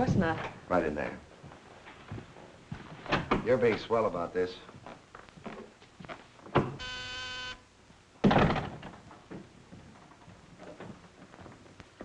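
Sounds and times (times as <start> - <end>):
intercom buzzer: 6.8 - 7.6.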